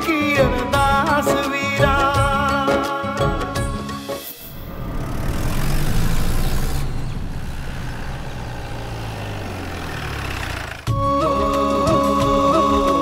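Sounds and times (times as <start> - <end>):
car engine running: 4.4 - 11.0
tyre and road noise: 4.4 - 11.0.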